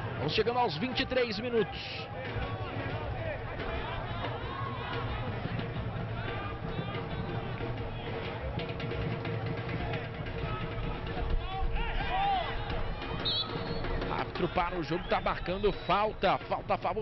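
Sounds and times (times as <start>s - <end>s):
constant crowd rumble: 0.0s - 17.0s
crowd shouts and calls: 0.0s - 17.0s.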